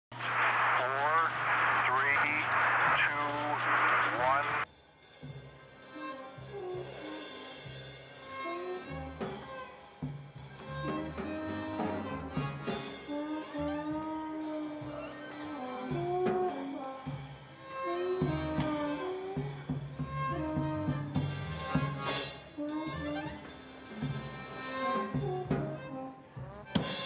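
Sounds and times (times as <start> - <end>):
loud noisy burst: 0.1 - 4.6
wavering voices: 0.2 - 4.6
violin-led string music: 5.8 - 27.0.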